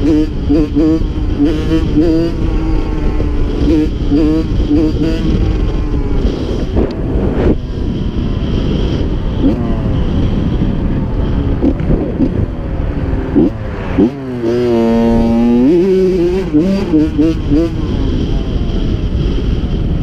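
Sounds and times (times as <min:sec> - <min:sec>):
dirt bike engine running: 0:00.0 - 0:20.0
wind rushing over microphone: 0:00.0 - 0:20.0.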